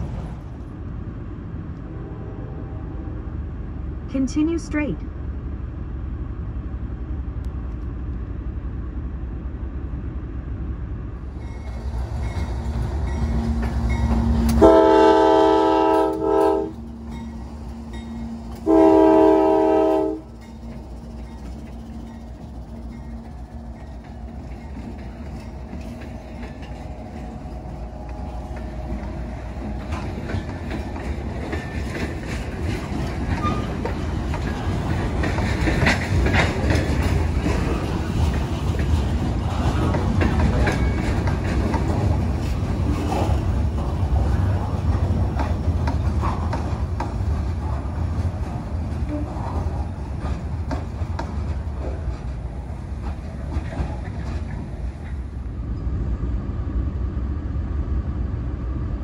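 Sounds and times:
train rumbling past: 0.0 - 59.0
wheels clacking over rails: 11.2 - 19.0, 20.2 - 55.4
locomotive horn blasts: 14.5 - 16.9, 18.6 - 20.3.

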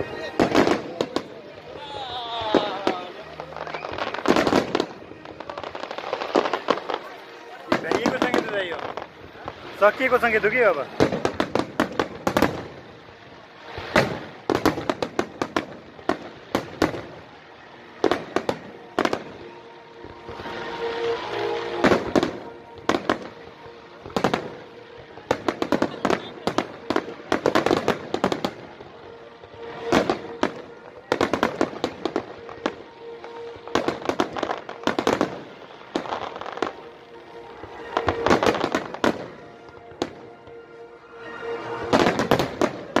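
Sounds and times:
fireworks bursting: 0.0 - 43.0.

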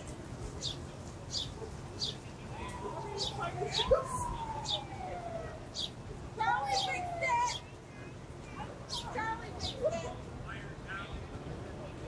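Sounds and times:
wailing siren: 2.5 - 7.6.

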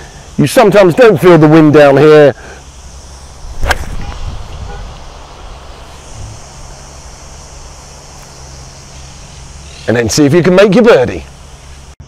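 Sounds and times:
wind rumble on microphone: 3.4 - 5.5
golf club striking ball: 3.5 - 4.2.

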